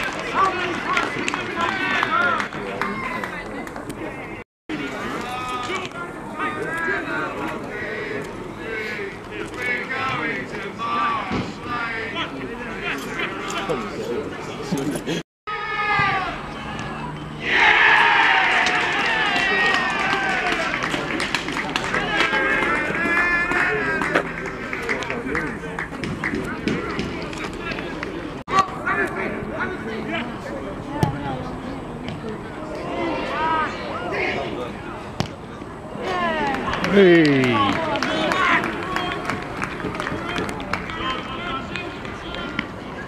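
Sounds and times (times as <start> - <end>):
scattered shouts: 15.5 - 20.9
crowd shouting and cheering: 15.5 - 30.1, 32.6 - 43.0
sharp claps: 18.6 - 22.7.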